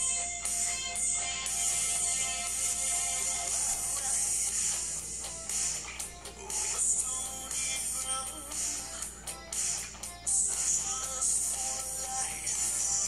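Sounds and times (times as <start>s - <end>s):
dance music: 0.0s - 13.0s.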